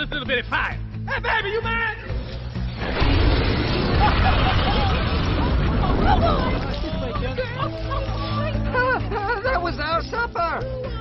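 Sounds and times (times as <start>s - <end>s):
fire blast rushing with rumble: 2.7s - 7.3s.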